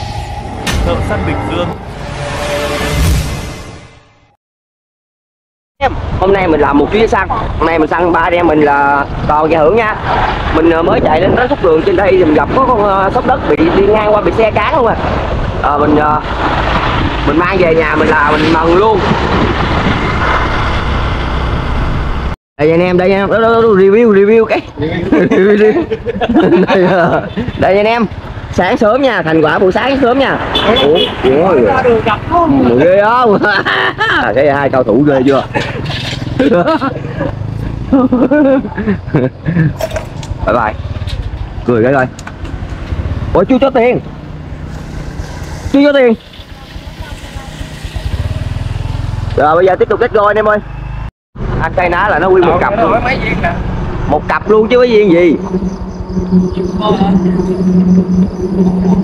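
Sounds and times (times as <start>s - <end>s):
wind buffeting microphone: 8.9s - 22.3s.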